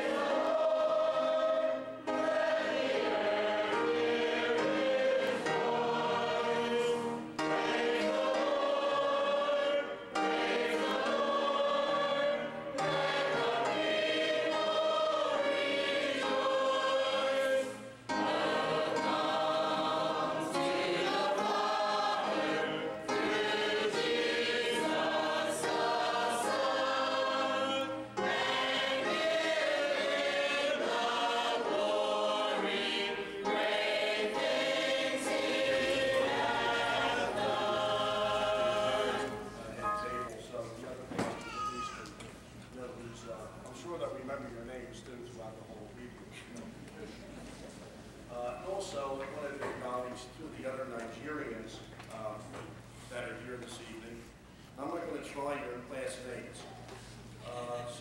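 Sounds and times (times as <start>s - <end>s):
choir singing a hymn: 0.0s - 40.6s.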